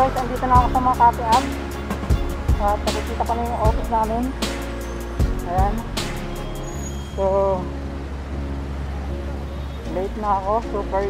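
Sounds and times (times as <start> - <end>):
background music of sustained chords: 0.0 - 11.0
city street traffic noise: 0.0 - 11.0.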